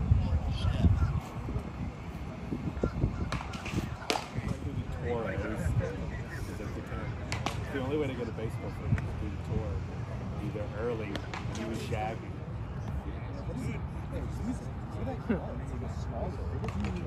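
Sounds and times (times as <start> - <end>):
men talking: 0.2 - 17.0.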